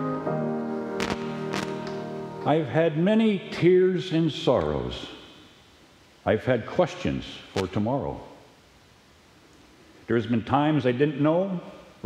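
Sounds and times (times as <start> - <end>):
held hymn chord: 0.0 - 3.5.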